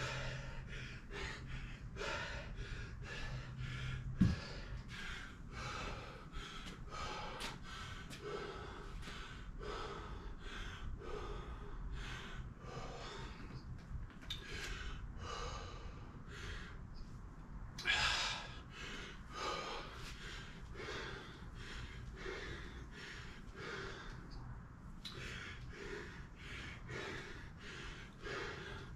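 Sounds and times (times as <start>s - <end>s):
man panting hard: 0.0s - 13.6s, 14.4s - 16.8s, 17.8s - 24.4s, 25.1s - 28.9s.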